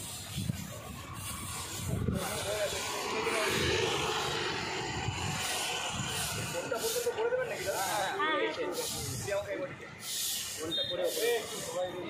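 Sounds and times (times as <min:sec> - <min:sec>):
brooms sweeping pavement: 0:00.0 - 0:12.0
people talking: 0:00.8 - 0:04.6, 0:05.4 - 0:12.0.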